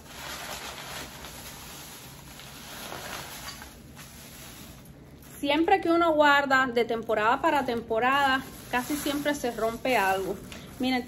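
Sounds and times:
plastic bags rustling: 0:00.0 - 0:11.0.

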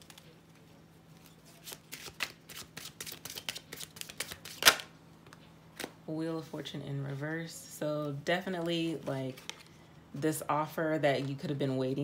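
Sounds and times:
cards being shuffled: 0:01.2 - 0:04.9.

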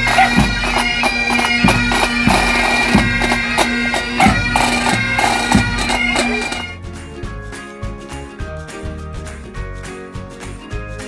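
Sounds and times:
bagpipes with drone: 0:00.0 - 0:06.8
bass drum beating: 0:00.0 - 0:09.8
quieter music: 0:00.0 - 0:11.0.

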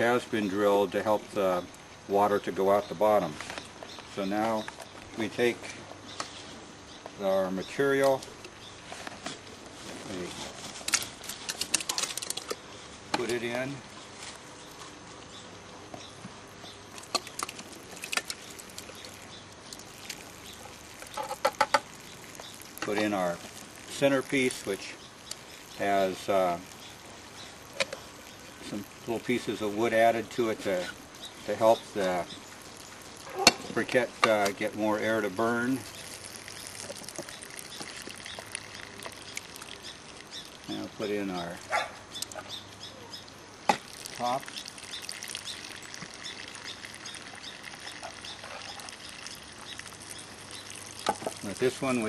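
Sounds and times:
hands scooping wet mix: 0:16.9 - 0:42.4, 0:43.8 - 0:52.0.

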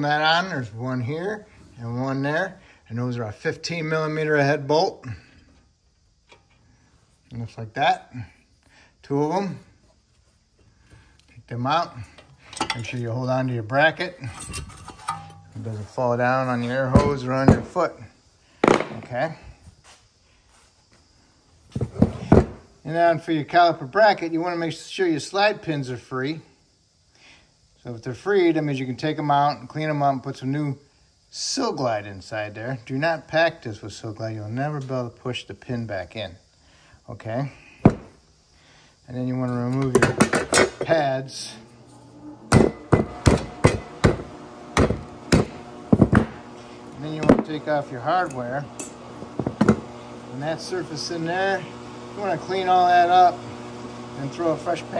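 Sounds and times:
hammer striking metal: 0:42.5 - 0:44.2.

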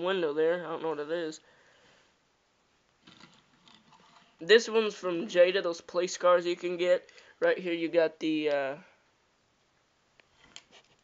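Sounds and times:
toy cars clicking and scraping: 0:03.0 - 0:04.4.

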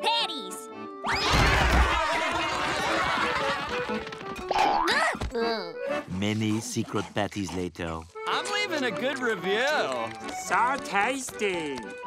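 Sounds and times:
music: 0:00.0 - 0:12.0
cartoon crowd rushing clamour: 0:01.1 - 0:03.9.

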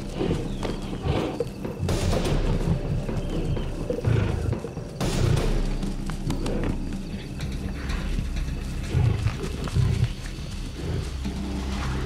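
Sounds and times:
documentary music: 0:00.0 - 0:12.0
lions growling: 0:00.0 - 0:12.0.

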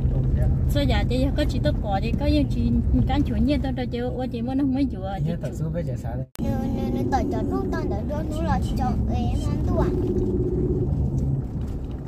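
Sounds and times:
car driving rumble: 0:00.0 - 0:12.0.

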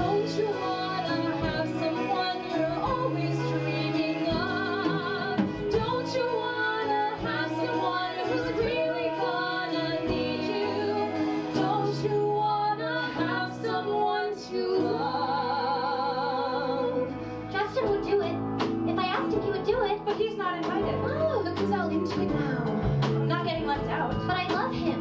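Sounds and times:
women singing with vibrato: 0:00.0 - 0:17.2
small band playing: 0:00.0 - 0:25.0.

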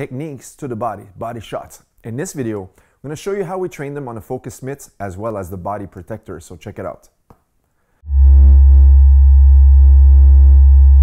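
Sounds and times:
synthesizer chord with deep bass: 0:08.0 - 0:11.0.

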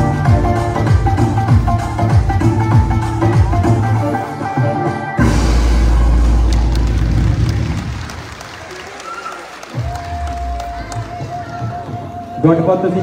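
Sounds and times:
loud dance music: 0:00.0 - 0:08.0, 0:09.8 - 0:12.4
audience applause and cheering: 0:05.2 - 0:12.4.

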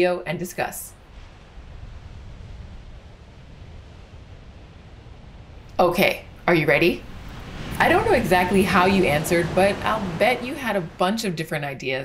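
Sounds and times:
waves breaking: 0:00.4 - 0:12.0.

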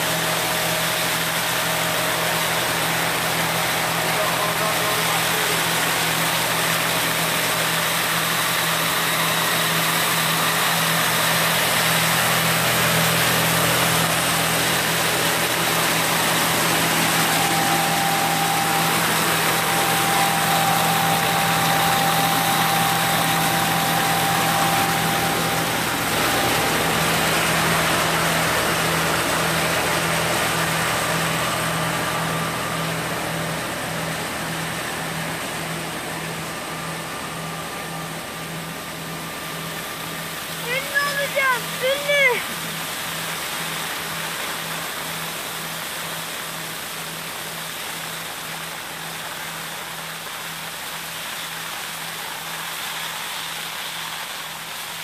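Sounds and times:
machine hum: 0:00.0 - 0:51.3
thin whistle: 0:16.2 - 0:28.4.

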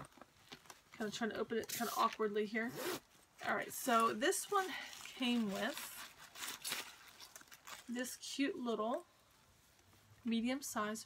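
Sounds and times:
plastic wrapping rustling: 0:00.0 - 0:02.4, 0:03.4 - 0:08.3.

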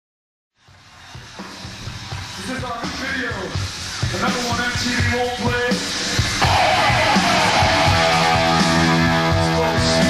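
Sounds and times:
rock concert crowd and stage noise: 0:00.6 - 0:10.0.

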